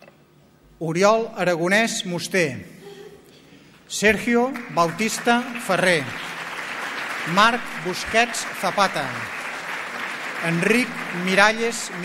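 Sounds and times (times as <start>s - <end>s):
audience applauding: 4.1s - 12.0s
person speaking: 7.2s - 9.3s, 10.4s - 12.0s.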